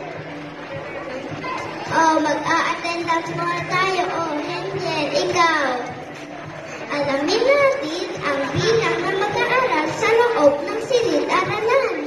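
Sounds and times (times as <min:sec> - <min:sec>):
child speaking over loudspeakers: 0:01.3 - 0:12.0.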